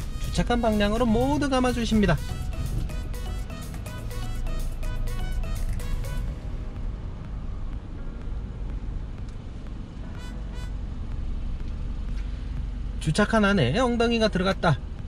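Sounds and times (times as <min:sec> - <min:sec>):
background music with a beat: 0:00.0 - 0:13.3, 0:14.8 - 0:15.0
car reversing rumble: 0:00.0 - 0:15.0.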